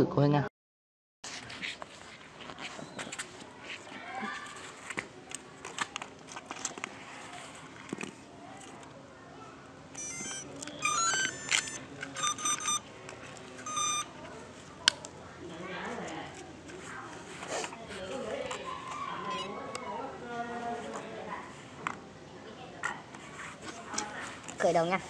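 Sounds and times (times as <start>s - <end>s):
motor controllers beeping: 10.0s - 12.8s, 13.6s - 14.1s.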